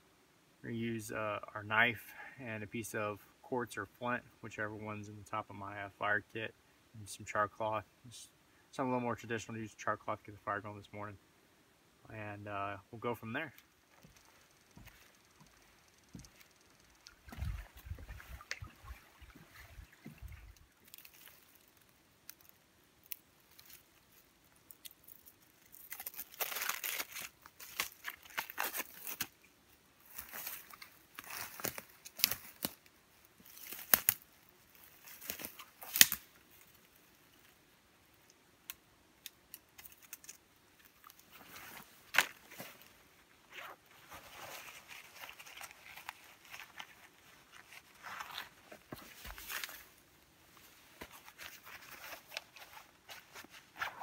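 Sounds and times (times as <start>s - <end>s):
dry material rustling and tearing: 20.8s - 29.4s, 30.0s - 36.8s, 43.5s - 50.0s, 50.9s - 54.0s.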